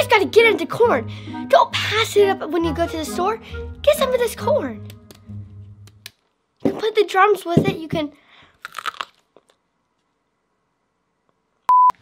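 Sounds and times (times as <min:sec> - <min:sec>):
electronic beep: 0:11.7 - 0:12.0.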